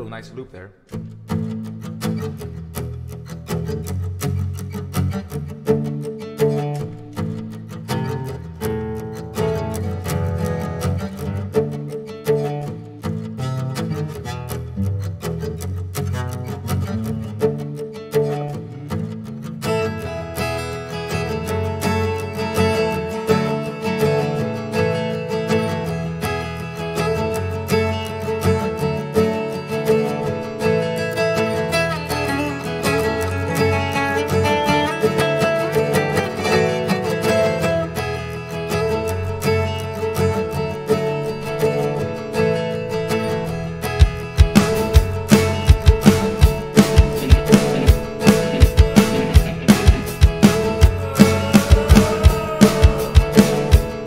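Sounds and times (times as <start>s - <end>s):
brighter guitar layer: 0.0s - 54.0s
fingerpicked acoustic guitar: 0.9s - 54.0s.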